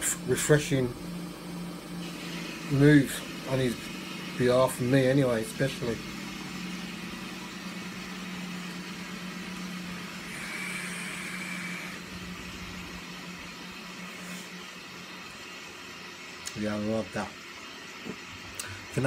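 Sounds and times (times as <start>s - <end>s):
washing machine humming: 0.0s - 19.0s
vape drawing hiss: 10.0s - 12.2s, 14.0s - 14.8s.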